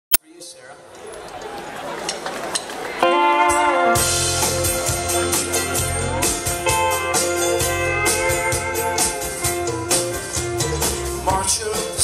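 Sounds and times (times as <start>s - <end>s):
steady drum beat: 4.0s - 12.0s.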